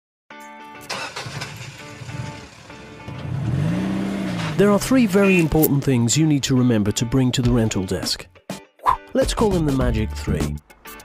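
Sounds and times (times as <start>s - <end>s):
car engine starting and revving: 0.8s - 5.7s.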